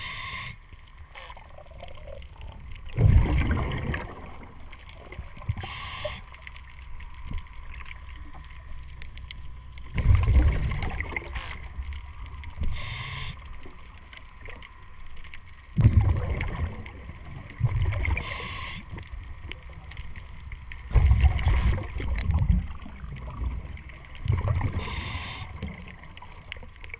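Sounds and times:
high hissing inhales: 0:00.0 - 0:00.6, 0:05.6 - 0:06.3, 0:12.7 - 0:13.4, 0:18.2 - 0:18.9, 0:24.8 - 0:25.6
bubbling exhaled air: 0:01.6 - 0:06.3, 0:09.9 - 0:11.4, 0:15.8 - 0:19.0, 0:20.9 - 0:26.6.

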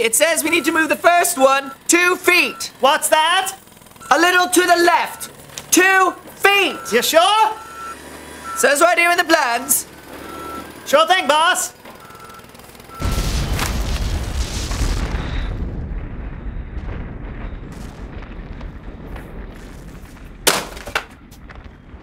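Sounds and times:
vehicle reversing beeps: 0:00.0 - 0:13.3, 0:14.9 - 0:17.9, 0:21.1 - 0:22.0
building collapse rumble: 0:12.9 - 0:22.0
demolition blast boom: 0:12.9 - 0:22.0.

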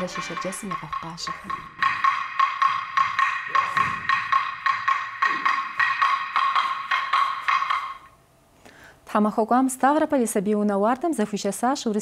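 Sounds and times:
held high tone: 0:00.0 - 0:01.8.

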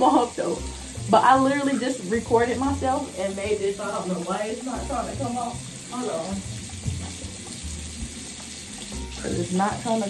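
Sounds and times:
tap water running into sink: 0:00.0 - 0:10.0.

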